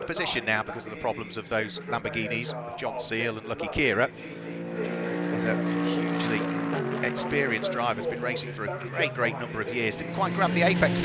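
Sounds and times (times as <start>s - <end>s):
race car engines: 0.0s - 11.0s.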